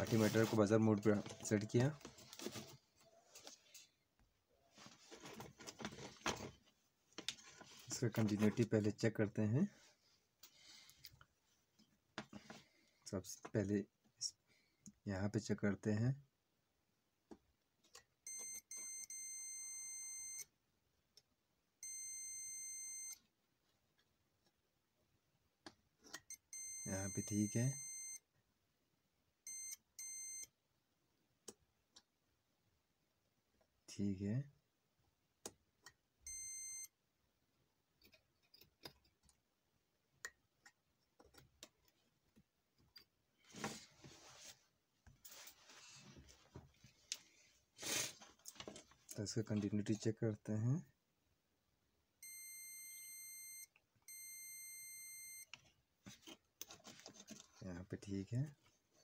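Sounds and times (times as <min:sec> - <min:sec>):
multimeter continuity beeps: 0:18.3 - 0:20.5, 0:21.8 - 0:23.2, 0:26.3 - 0:28.2, 0:29.5 - 0:30.5, 0:36.3 - 0:37.0, 0:52.2 - 0:55.5.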